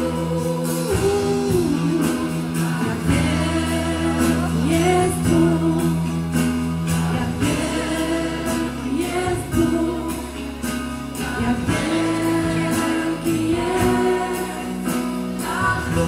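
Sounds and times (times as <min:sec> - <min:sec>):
guitar: 0:00.0 - 0:16.0
person singing: 0:00.0 - 0:16.0
steady drum beat: 0:00.0 - 0:16.0.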